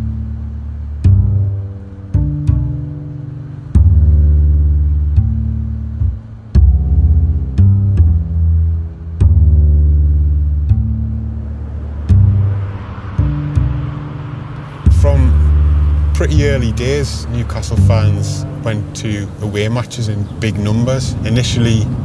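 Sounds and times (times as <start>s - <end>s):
plucked bass notes music: 0.0s - 22.0s
steady rushing hiss: 0.0s - 22.0s.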